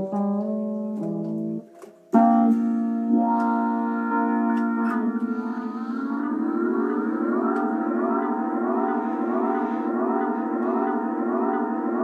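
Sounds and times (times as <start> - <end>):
slide steel guitar: 2.2 - 12.0.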